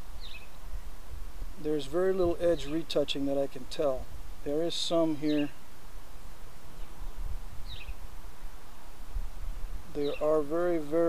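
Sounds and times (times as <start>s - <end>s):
low rumbling background noise: 0.0s - 11.0s
falling bird chirp: 0.2s - 0.6s, 7.6s - 8.0s, 10.0s - 10.4s.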